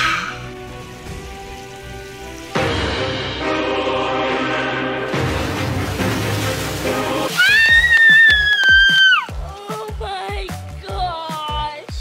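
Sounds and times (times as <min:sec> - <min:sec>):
splash of person jumping into pool: 0:05.7 - 0:09.2.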